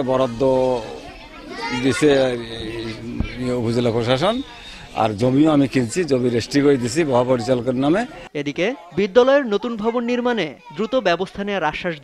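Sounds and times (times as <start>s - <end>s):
children's voices: 0.0s - 11.9s.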